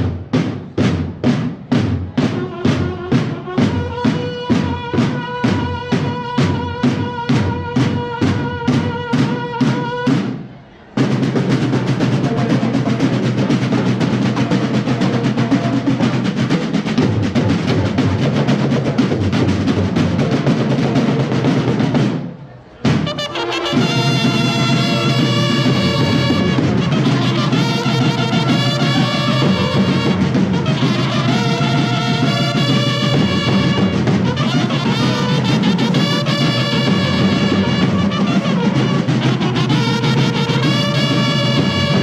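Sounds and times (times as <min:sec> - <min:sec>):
drumming: 0:00.0 - 0:42.0
bugles blasting: 0:22.8 - 0:42.0.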